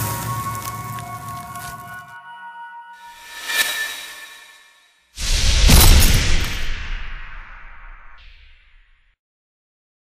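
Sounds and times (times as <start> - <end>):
hissing whoosh: 3.2 - 8.8.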